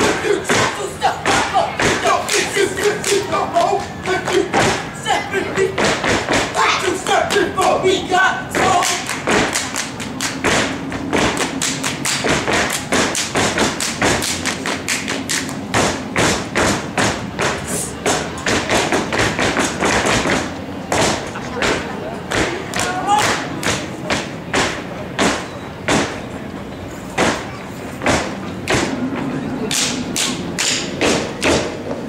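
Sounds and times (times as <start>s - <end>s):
hand claps: 0.5s - 4.8s, 8.8s - 16.4s, 21.0s - 26.1s.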